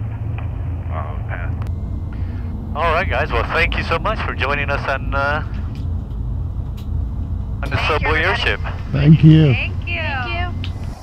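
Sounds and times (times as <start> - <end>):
airship engines droning: 0.0 - 11.0
faint voices: 7.6 - 10.5.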